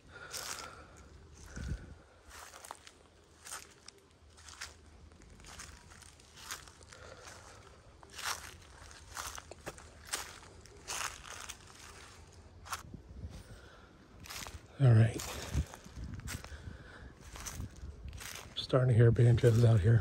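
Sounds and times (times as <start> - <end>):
footsteps crunching on dry leaves: 0.1 - 13.6, 14.2 - 20.0.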